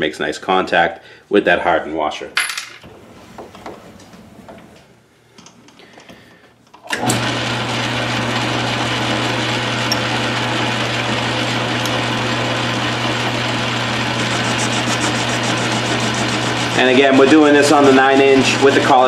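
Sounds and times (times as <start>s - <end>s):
metal lathe motor humming: 7.0s - 19.0s.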